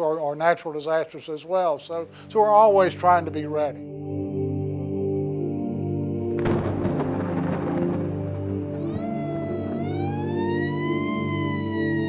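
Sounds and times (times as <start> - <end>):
low sustained music bed: 1.7 - 12.0
siren wailing: 8.7 - 12.0.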